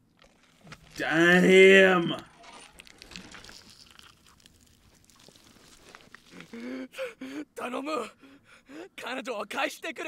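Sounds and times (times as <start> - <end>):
man crying and gasping: 6.4 - 9.0.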